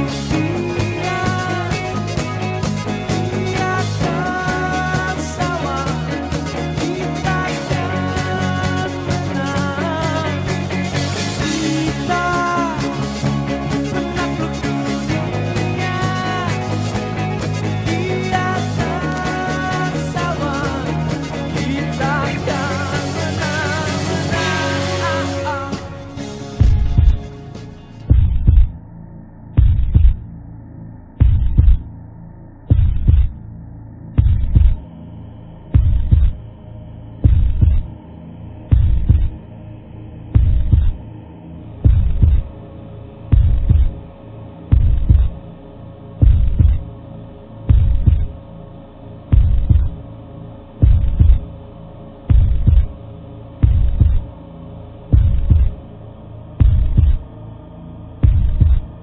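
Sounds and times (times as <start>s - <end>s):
steady hum: 0.0s - 59.0s
deep low thumps: 26.4s - 34.9s, 35.6s - 36.6s, 37.2s - 38.0s, 38.6s - 39.5s, 40.3s - 41.1s, 41.7s - 42.6s, 43.3s - 45.4s, 46.2s - 46.9s, 47.6s - 48.4s, 49.2s - 50.0s, 50.8s - 51.5s, 52.2s - 53.0s, 53.6s - 54.4s, 55.0s - 55.8s, 56.6s - 57.3s, 58.2s - 59.0s.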